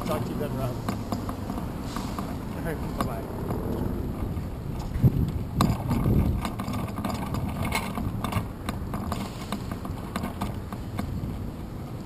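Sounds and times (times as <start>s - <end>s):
road noise: 0.0s - 12.0s
wind rush: 1.4s - 9.6s.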